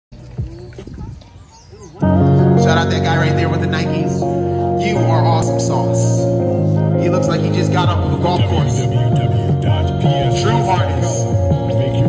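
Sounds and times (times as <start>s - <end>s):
people talking nearby: 0.1s - 3.0s.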